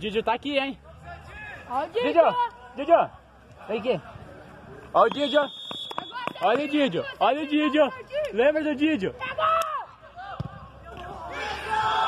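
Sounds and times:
crowd shouting and cheering: 0:09.1 - 0:12.0.

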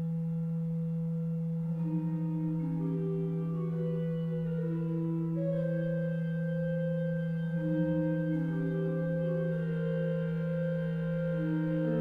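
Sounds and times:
pipe organ chord: 0:00.0 - 0:12.0.

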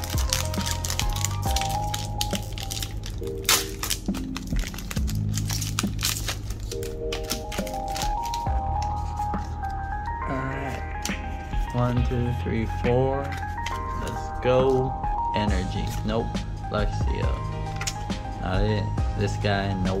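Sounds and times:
foil wrapper crinkling and tearing: 0:00.0 - 0:10.2
background music: 0:00.0 - 0:20.0.

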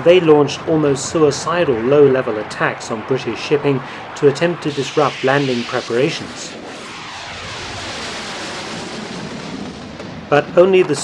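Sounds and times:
jet aircraft flying past: 0:02.3 - 0:10.6.

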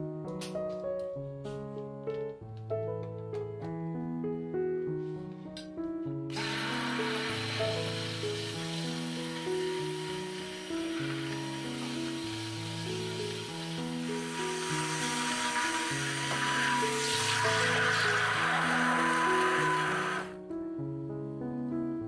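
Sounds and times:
hand blender blending: 0:06.3 - 0:20.4
thin motor whine: 0:06.3 - 0:20.4.

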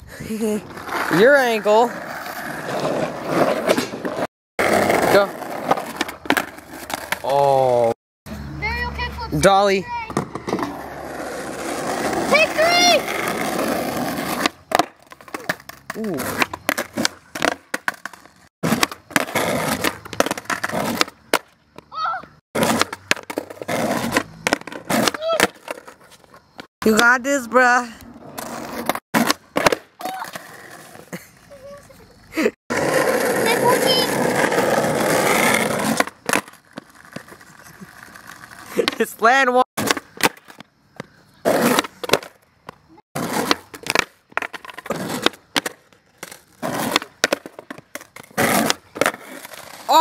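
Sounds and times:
skateboard wheels rolling on asphalt: 0:00.0 - 0:50.0
skateboard clacking on pavement: 0:02.6 - 0:07.8, 0:10.0 - 0:21.9, 0:22.6 - 0:27.2, 0:28.4 - 0:31.0, 0:32.7 - 0:39.1, 0:39.8 - 0:50.0.

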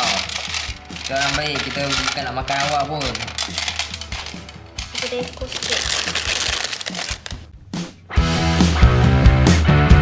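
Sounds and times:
pebbles rattling into plastic tank: 0:00.0 - 0:07.4
plastic bag crinkling: 0:00.0 - 0:07.5.

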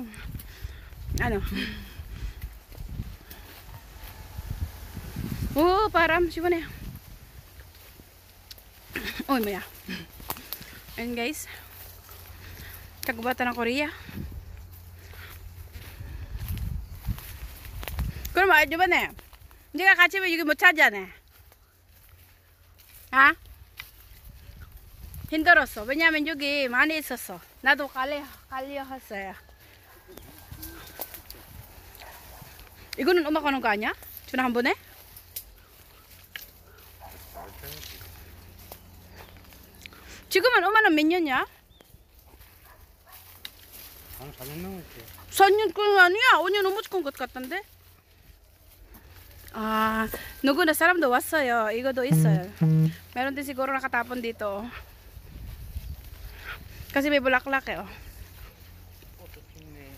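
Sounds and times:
wind and handling rumble on microphone: 0:02.0 - 0:07.7, 0:15.9 - 0:18.3
short voiced call: 0:52.1 - 0:53.1
thin high tone: 0:52.1 - 0:53.1.

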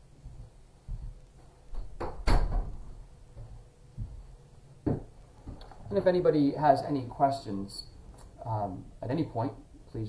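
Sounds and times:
door closing thud: 0:01.7 - 0:02.8
soft knocks: 0:04.8 - 0:05.6.

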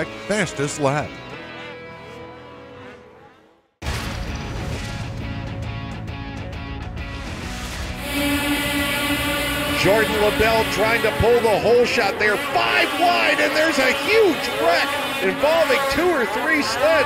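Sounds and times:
broadcast music: 0:00.0 - 0:03.0, 0:04.6 - 0:17.0
snowmobiles revving: 0:00.0 - 0:03.8, 0:07.7 - 0:17.0.

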